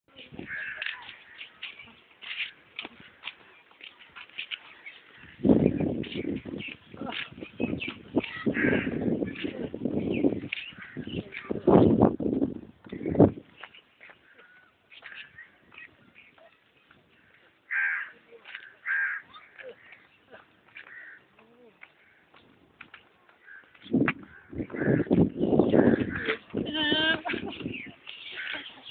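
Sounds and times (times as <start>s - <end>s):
caw-like bird calls: 0.5s - 1.5s, 8.4s - 9.2s, 17.2s - 20.1s, 20.8s - 21.3s, 23.4s - 26.4s, 28.2s - 28.9s.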